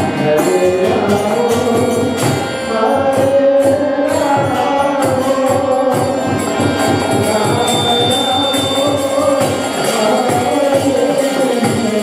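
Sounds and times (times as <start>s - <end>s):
hand percussion beat: 0.0s - 12.0s
harmonium chords: 0.0s - 12.0s
man chanting a mantra: 2.7s - 12.0s.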